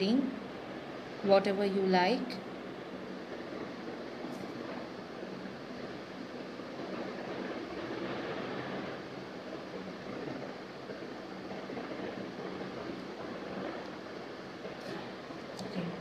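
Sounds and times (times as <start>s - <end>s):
room noise hiss: 0.0s - 16.0s.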